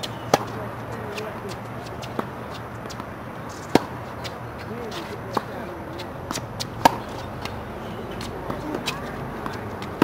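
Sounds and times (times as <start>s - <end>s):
tennis racket hitting ball: 0.0s - 10.0s.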